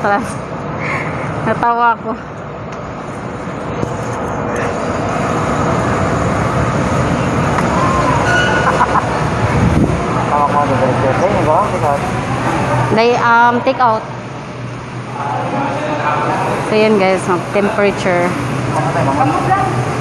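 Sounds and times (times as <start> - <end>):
street traffic noise: 0.0 - 20.0.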